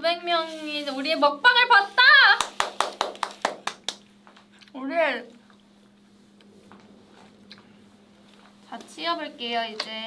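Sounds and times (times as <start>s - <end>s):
hand clapping: 2.4s - 4.1s.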